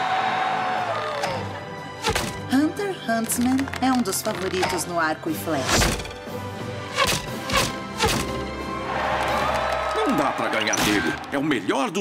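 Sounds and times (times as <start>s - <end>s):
background music: 0.0s - 12.0s
arrows thudding into target: 6.9s - 8.4s.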